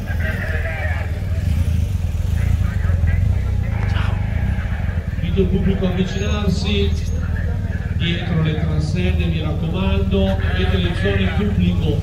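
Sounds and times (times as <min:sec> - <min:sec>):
background voices: 0:00.0 - 0:12.0
car driving slowly past: 0:00.0 - 0:12.0.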